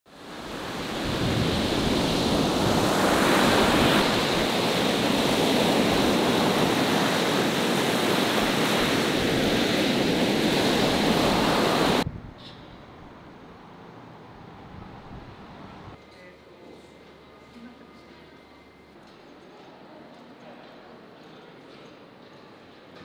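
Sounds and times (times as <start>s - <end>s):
ocean waves breaking: 0.1s - 12.0s.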